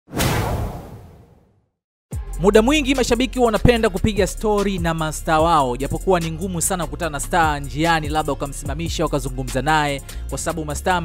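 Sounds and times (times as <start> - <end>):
whoosh and boom hit: 0.1 - 1.6.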